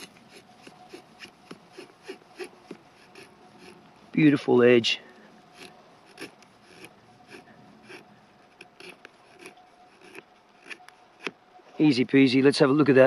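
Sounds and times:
knife scraping wood: 0.0s - 3.9s, 5.5s - 11.4s.

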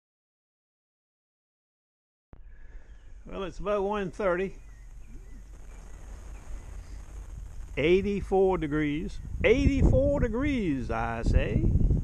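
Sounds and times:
steady low rumble: 3.0s - 12.0s.

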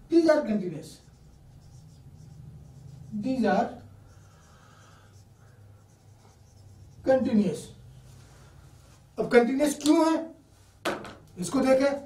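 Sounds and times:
person speaking: 0.0s - 4.3s, 5.1s - 7.9s, 9.0s - 10.4s, 11.3s - 12.0s
marker scratching on whiteboard: 0.8s - 7.8s.

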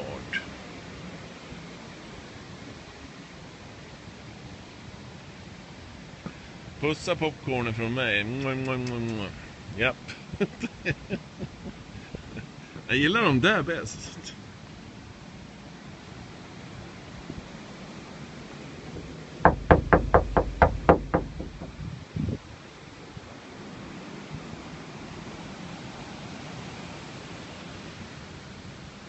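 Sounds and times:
steady background hiss: 0.0s - 29.0s
quick knocks: 19.5s - 22.0s.

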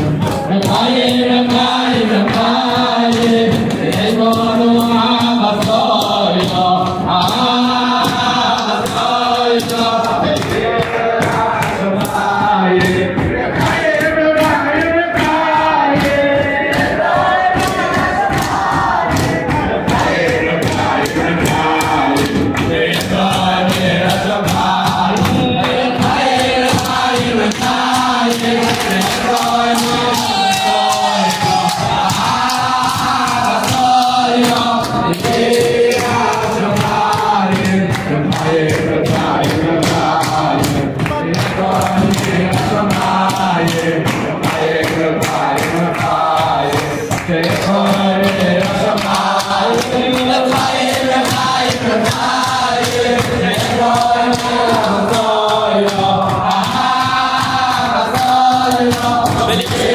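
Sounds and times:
crowd of men singing in unison: 0.0s - 59.9s
rhythmic hand-clapping: 0.0s - 59.9s.

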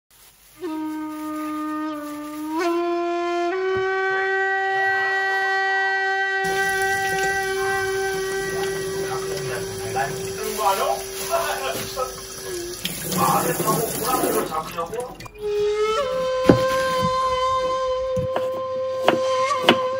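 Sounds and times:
held horn-like note: 0.6s - 14.6s
water splashing over onion: 6.4s - 15.5s
tap running into metal sink: 6.5s - 10.8s, 11.6s - 15.4s.

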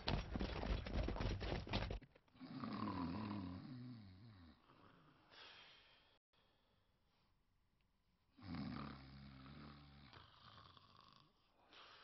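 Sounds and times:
man snoring: 2.4s - 5.2s, 8.4s - 11.6s.

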